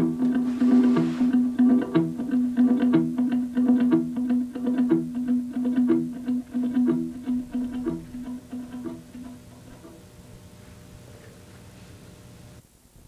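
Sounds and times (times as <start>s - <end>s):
acoustic guitar picking: 0.0s - 10.9s.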